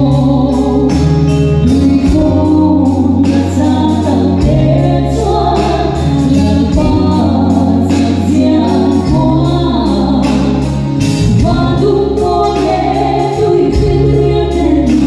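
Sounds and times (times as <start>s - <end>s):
drums: 0.0s - 15.0s
electric bass guitar: 0.0s - 15.0s
keyboards: 0.0s - 15.0s
woman singing into microphone: 0.0s - 15.0s.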